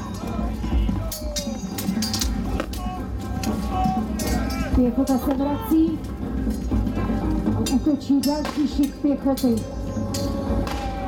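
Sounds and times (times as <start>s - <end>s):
steel weapons clashing: 0.0s - 5.8s, 7.6s - 11.0s
men shouting: 0.0s - 5.9s, 10.0s - 11.0s.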